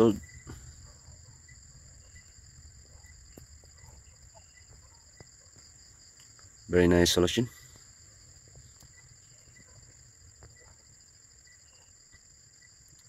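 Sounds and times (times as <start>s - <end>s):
insects trilling: 0.0s - 13.0s.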